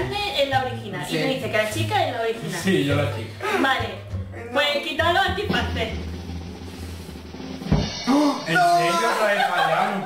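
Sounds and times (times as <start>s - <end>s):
drum roll: 5.2s - 9.4s
single drum hit: 7.5s - 8.2s.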